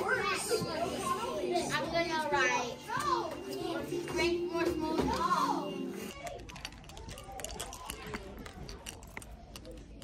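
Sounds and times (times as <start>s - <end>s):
faint voices: 0.0s - 10.0s
keys jingling: 6.3s - 10.0s.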